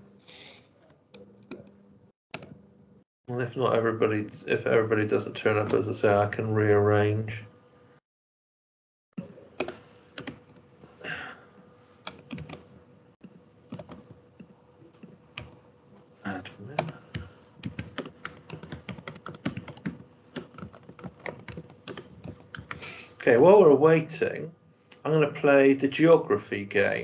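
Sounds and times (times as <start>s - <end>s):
typing on laptop keyboard: 9.6s - 10.5s, 12.0s - 12.6s, 13.7s - 14.1s, 15.4s - 15.6s, 16.8s - 22.9s.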